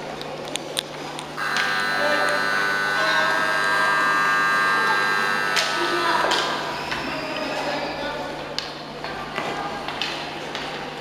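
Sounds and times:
ice rink buzzer: 0:01.4 - 0:07.2.

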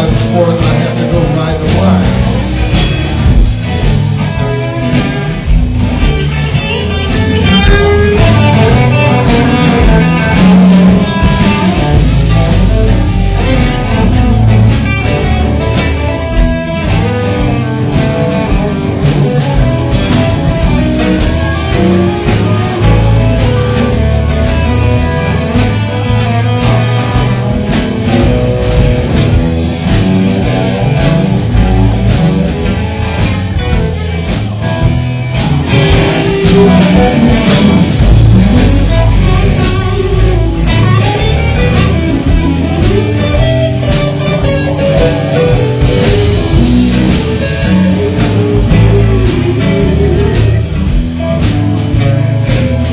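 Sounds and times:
electric guitar: 0:00.0 - 0:52.9
live blues band playing: 0:00.0 - 0:52.9.

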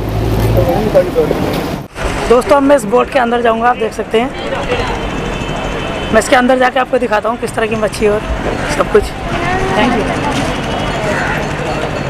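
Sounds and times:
people talking: 0:00.5 - 0:01.4, 0:02.3 - 0:05.2, 0:06.1 - 0:12.0.

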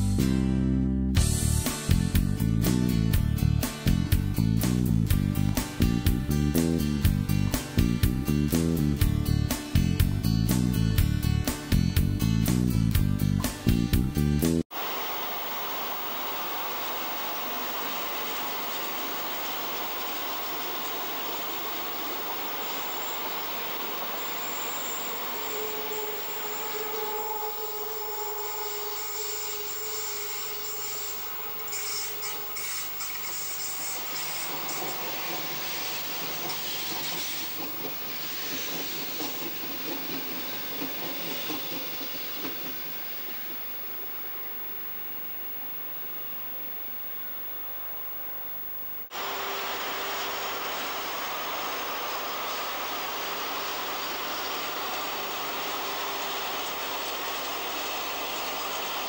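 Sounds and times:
high wheel squeal: 0:14.8 - 0:44.8
train wheels rumbling on rails: 0:15.8 - 0:44.2
wheels clicking over rail joints: 0:32.6 - 0:44.1.

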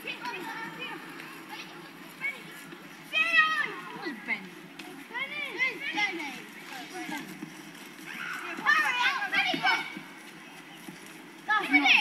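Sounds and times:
children shouting and yelling: 0:00.0 - 0:12.0.

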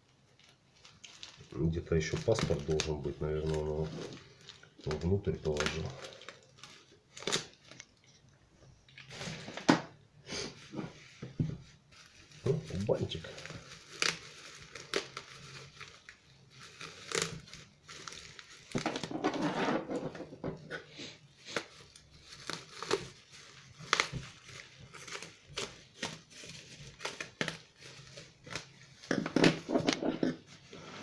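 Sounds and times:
plastic bag crinkling: 0:00.0 - 0:08.3, 0:11.8 - 0:19.5, 0:21.2 - 0:30.4.

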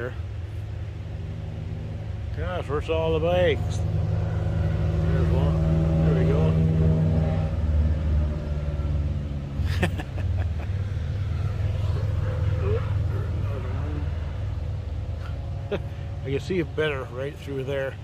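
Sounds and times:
motorcycle engine drone: 0:00.0 - 0:18.0.

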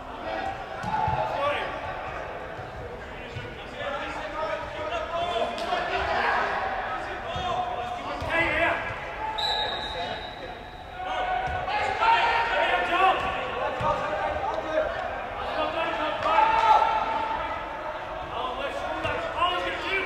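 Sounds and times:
players calling and shouting: 0:00.0 - 0:20.0
high whistle blast: 0:09.4 - 0:10.5.

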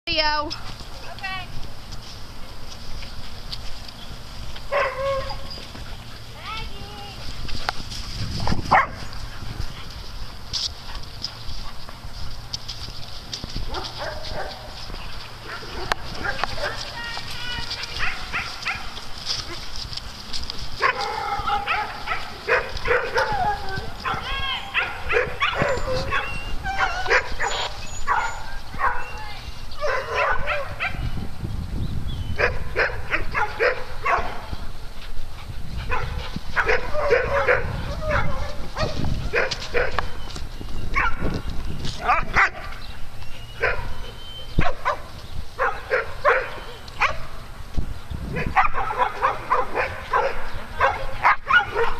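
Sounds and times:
dogs barking: 0:04.7 - 0:05.6, 0:08.7 - 0:09.1, 0:13.7 - 0:16.9, 0:17.8 - 0:19.7, 0:20.8 - 0:29.2, 0:29.8 - 0:31.1, 0:32.4 - 0:34.5, 0:35.9 - 0:40.2, 0:40.9 - 0:41.3, 0:42.0 - 0:42.8, 0:43.6 - 0:47.4, 0:48.3 - 0:51.9.

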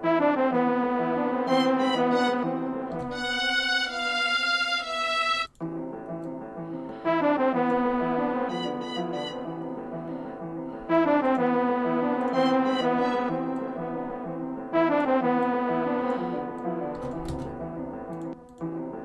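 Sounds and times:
looped orchestral string melody: 0:00.0 - 0:19.0.

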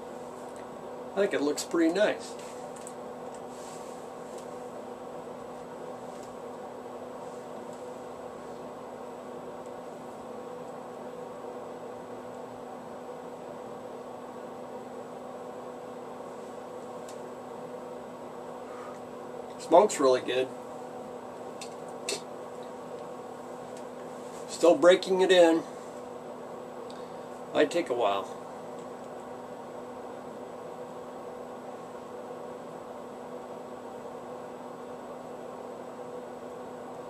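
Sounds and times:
room tone hum: 0:00.0 - 0:37.0.

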